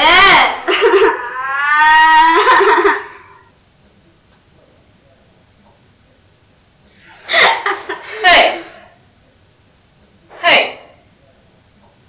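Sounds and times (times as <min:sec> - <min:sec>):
woman crying and wailing: 0:00.0 - 0:03.4.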